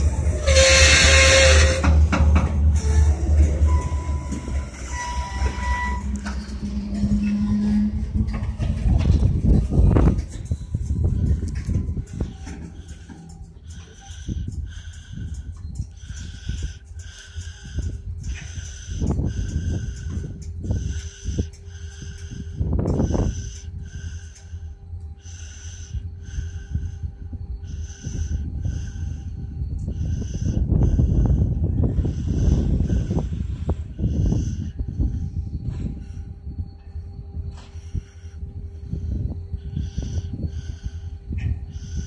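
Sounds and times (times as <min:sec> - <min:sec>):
high wheel squeal: 0:00.0 - 0:24.5
train wheels rumbling on rail: 0:00.0 - 0:42.0
wind gusts on microphone: 0:00.0 - 0:42.0.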